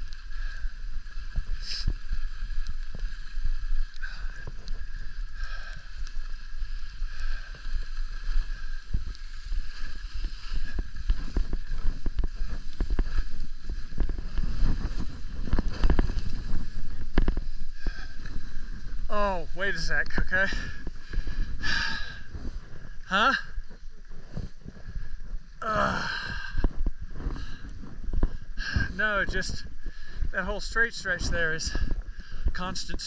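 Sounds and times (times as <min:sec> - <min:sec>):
skis scraping over snow: 0:00.0 - 0:33.0
wind rumbling on microphone: 0:00.0 - 0:33.0.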